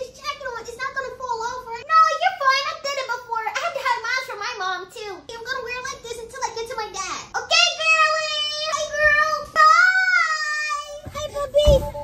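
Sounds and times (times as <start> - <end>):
low thump: 11.0 - 12.0.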